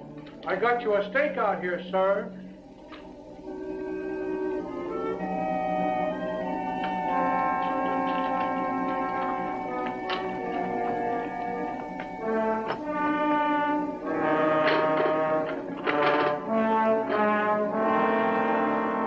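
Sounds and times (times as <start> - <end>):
orchestral score led by brass: 0.0 - 19.0.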